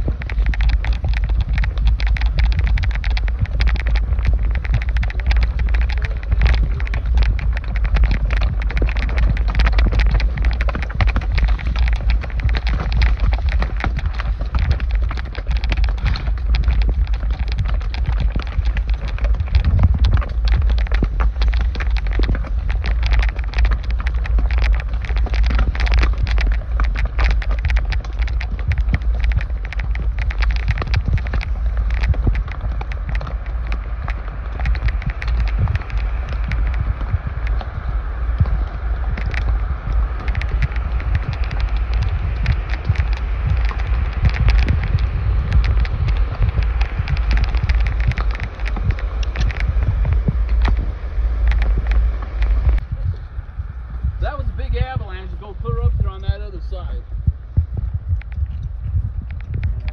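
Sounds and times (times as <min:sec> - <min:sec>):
horse hooves on rocky trail: 0:00.0 - 0:59.9
wind buffeting microphone: 0:00.0 - 0:59.9.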